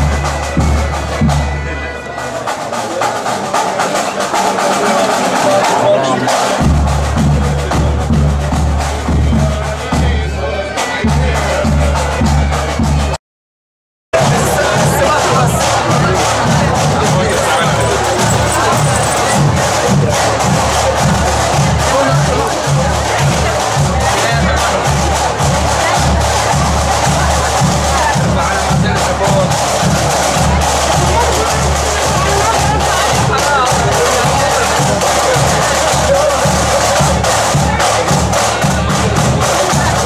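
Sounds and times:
crowd noise: 0:00.0 - 0:13.2, 0:14.1 - 0:40.0
drums beating march rhythm: 0:00.0 - 0:13.2, 0:14.1 - 0:40.0
marching band playing: 0:00.0 - 0:13.2, 0:14.2 - 0:40.0.

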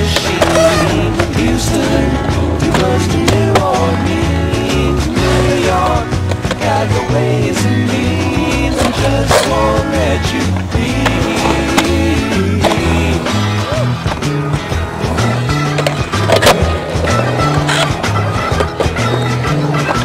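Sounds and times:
skateboard clacks: 0:00.0 - 0:07.7, 0:08.3 - 0:20.0
skateboard wheels rolling on concrete: 0:00.0 - 0:20.0
song with bass line: 0:00.0 - 0:20.0.

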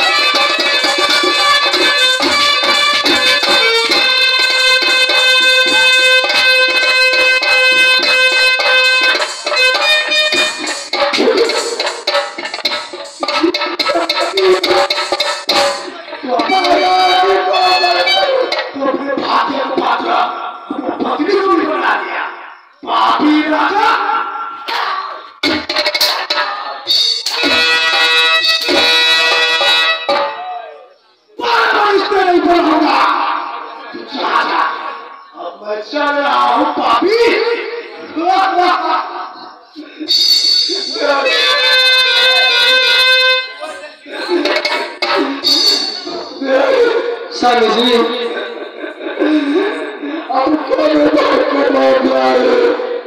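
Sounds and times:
electronic keyboard reedy chord: 0:00.0 - 0:18.8, 0:40.0 - 0:50.2
men shouting over microphones: 0:16.0 - 0:25.3, 0:30.4 - 0:39.4, 0:40.8 - 0:48.5, 0:49.8 - 0:53.0.

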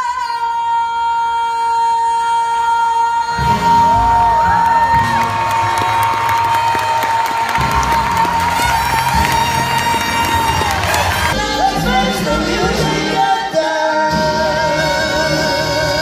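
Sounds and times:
audience cheering and whooping: 0:03.7 - 0:11.4
jazz big band playing: 0:07.4 - 0:16.0.

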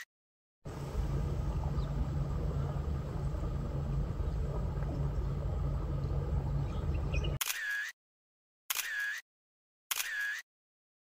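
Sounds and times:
low hum: 0:00.7 - 0:07.4
camera shutter sound effect: 0:07.4 - 0:08.0, 0:08.7 - 0:09.2, 0:09.9 - 0:10.5.

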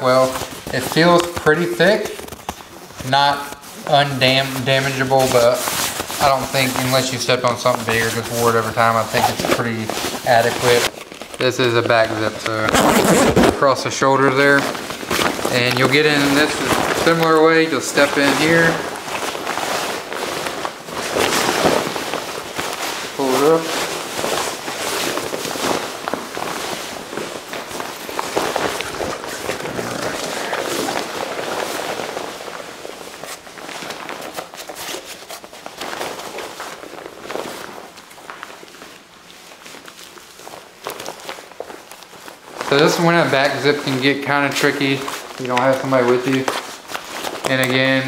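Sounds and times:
nylon drysuit rustling and crinkling: 0:00.0 - 0:48.0.

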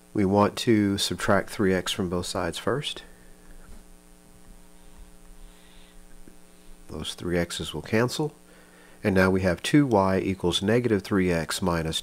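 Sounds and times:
faint electrical mains hum: 0:00.0 - 0:12.0.

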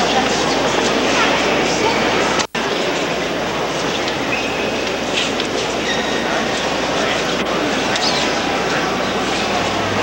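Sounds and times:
echoing crowd murmur: 0:00.0 - 0:10.0.

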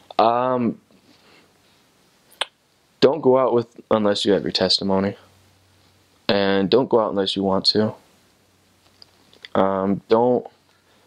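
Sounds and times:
mouth click: 0:02.4 - 0:02.6.

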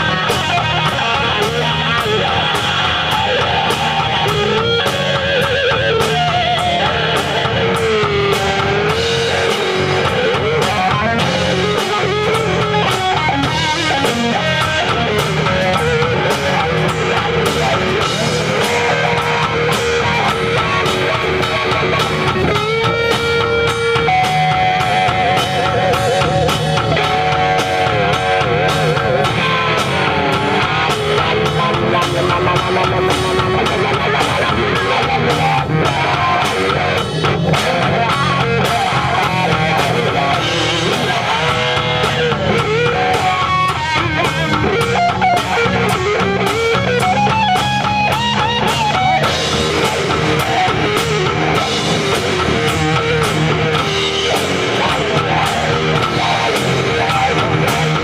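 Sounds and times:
bass guitar: 0:00.0 - 0:58.0
drums: 0:00.0 - 0:58.0
electric guitar lead solo: 0:00.0 - 0:58.0.

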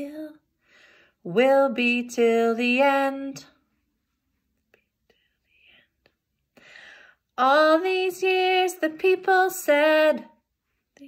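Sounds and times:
woman's intake of breath: 0:00.6 - 0:01.2, 0:06.6 - 0:07.3.

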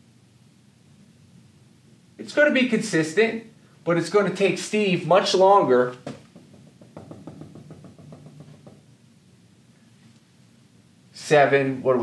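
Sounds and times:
marker tapping on whiteboard: 0:06.0 - 0:08.9.

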